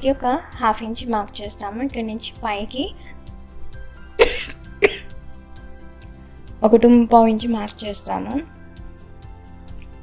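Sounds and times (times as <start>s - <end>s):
soft background music: 0.0s - 10.0s
woman coughing: 4.2s - 5.1s.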